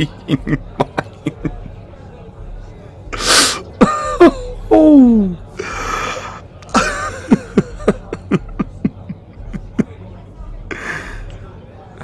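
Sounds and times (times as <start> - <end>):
man's sharp noisy breath: 3.1 - 3.7, 5.6 - 6.4.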